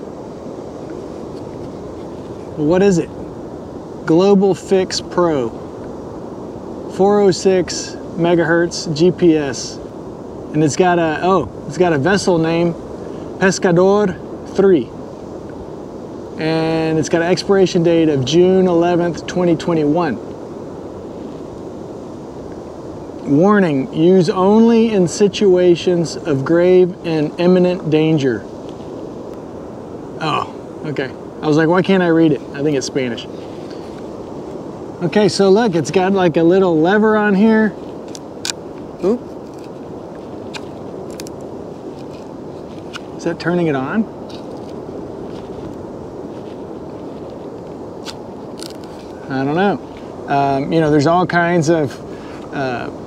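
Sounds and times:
low rushing beach noise: 0:00.0 - 0:53.0
wind noise on microphone: 0:00.0 - 0:53.0.

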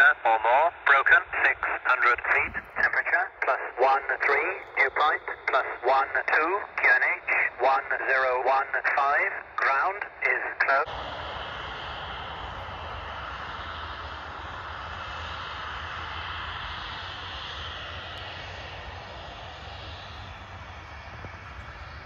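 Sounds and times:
distant jet engine roar: 0:00.0 - 0:22.0.

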